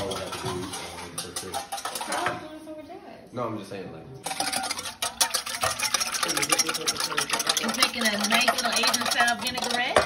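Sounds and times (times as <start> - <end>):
whisk scraping metal bowl: 0.0 - 2.6, 4.2 - 10.0.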